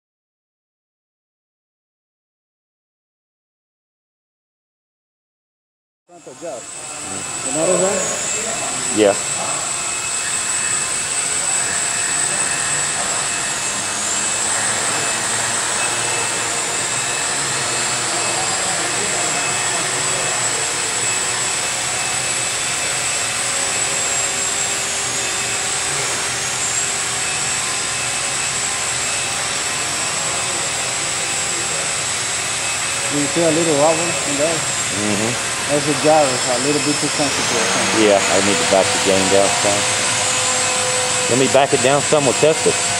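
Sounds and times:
quadcopter motors whirring: 6.1s - 42.9s.

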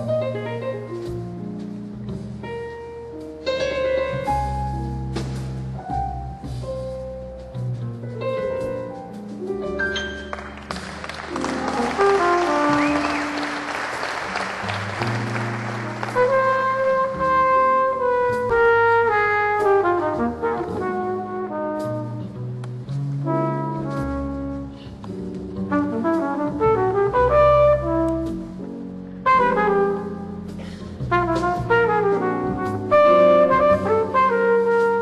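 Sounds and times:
double bass: 0.0s - 35.0s
piano: 0.0s - 35.0s
brass horn slow melody: 11.4s - 22.4s, 23.2s - 25.0s, 25.7s - 28.6s, 29.2s - 35.0s.

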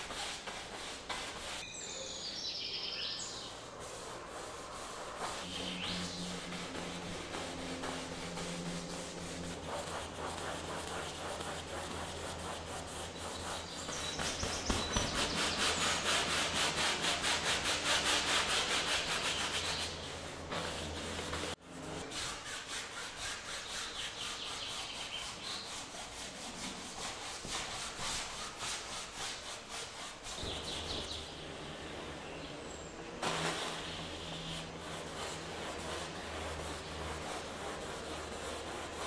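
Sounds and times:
brush scrubbing on canvas: 0.0s - 1.6s, 3.4s - 31.7s, 33.2s - 39.0s.

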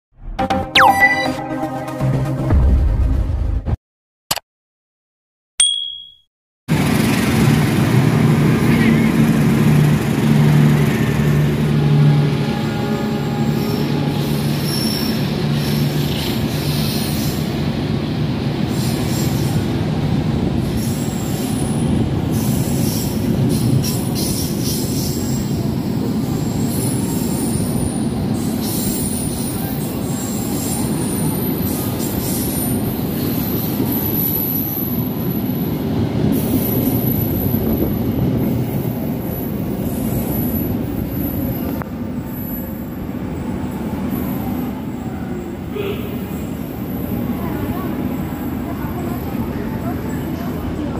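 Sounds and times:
train wheels rumbling on rails: 6.7s - 50.9s.

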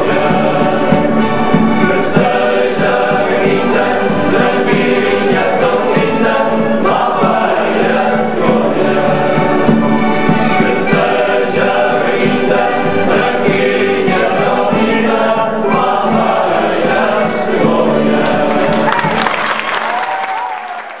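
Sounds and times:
men's choir singing: 0.0s - 19.5s
acoustic guitar: 0.0s - 19.6s
people clapping: 18.2s - 21.0s.

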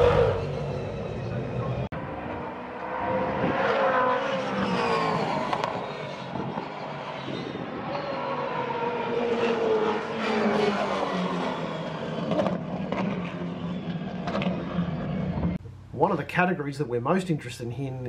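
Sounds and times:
race car engine accelerating: 0.0s - 15.6s.

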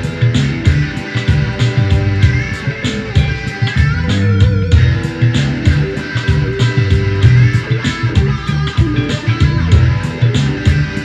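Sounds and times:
funk-rock electric guitar: 0.0s - 11.0s
steady beat of sharp hits: 0.0s - 11.0s.

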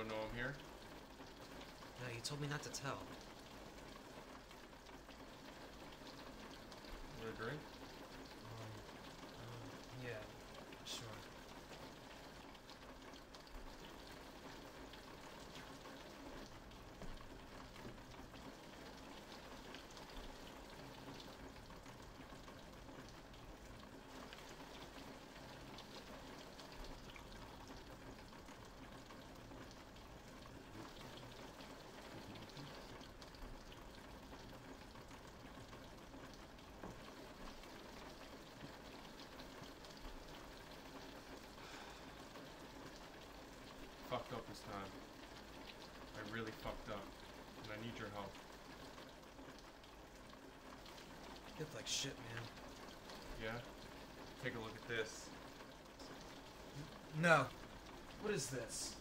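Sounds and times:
faint steady rain: 0.0s - 59.0s
rain drops ticking: 0.0s - 59.0s.

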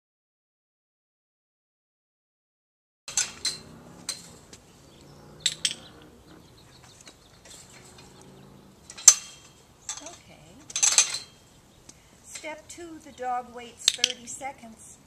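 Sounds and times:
metal gate clinking and rattling: 3.1s - 11.6s.

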